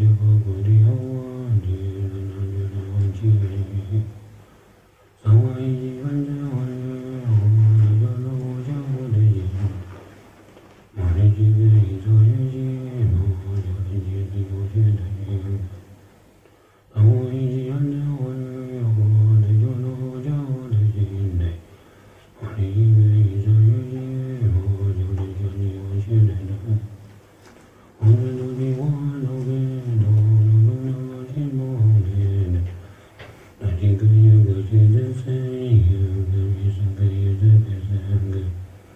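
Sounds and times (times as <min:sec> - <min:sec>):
deep male voice chanting: 0:00.0 - 0:04.5, 0:05.1 - 0:10.3, 0:10.9 - 0:16.1, 0:16.8 - 0:27.2, 0:27.9 - 0:38.9.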